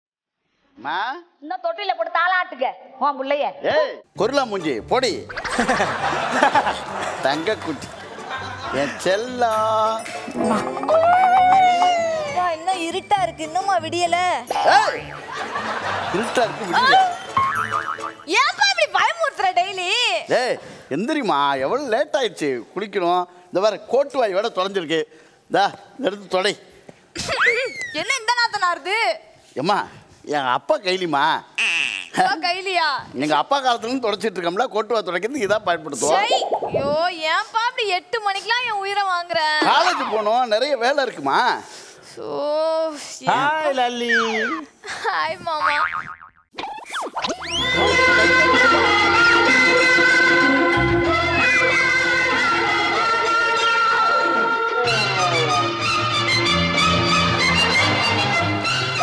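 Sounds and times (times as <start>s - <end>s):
comic boing sound effect: 10.3s - 11.9s, 17.4s - 18.3s, 45.7s - 46.5s
warbling cry sliding in pitch: 46.6s - 48.8s.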